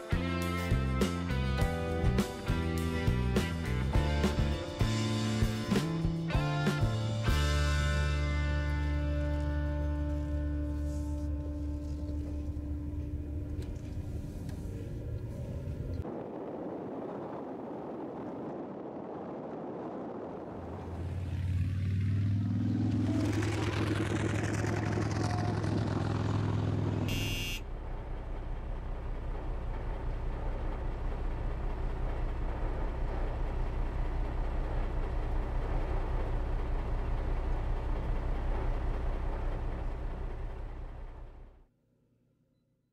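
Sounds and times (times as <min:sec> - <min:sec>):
low rumble with fast flutter: 0:00.2 - 0:41.7
car engine: 0:20.2 - 0:41.7.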